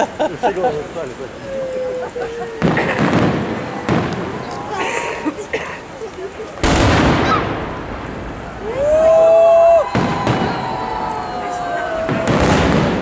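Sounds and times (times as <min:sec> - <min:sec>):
spectators talking faintly: 0:00.0 - 0:13.0
fireworks booms with rumble: 0:02.5 - 0:04.8, 0:06.6 - 0:13.0.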